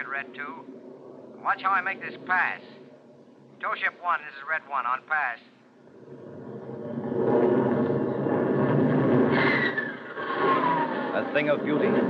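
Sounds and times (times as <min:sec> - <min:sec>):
falling jet whine: 0:05.7 - 0:12.0
jet fighter rushing past: 0:05.8 - 0:12.0.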